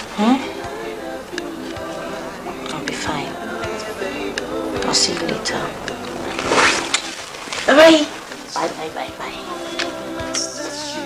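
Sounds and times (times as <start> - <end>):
indistinct voice: 0.0 - 11.0.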